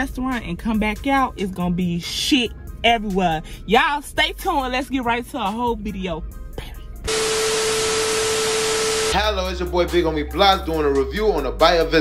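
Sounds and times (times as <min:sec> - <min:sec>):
steady mid-pitched tone: 0:07.1 - 0:09.2
tv static hiss: 0:07.1 - 0:09.2.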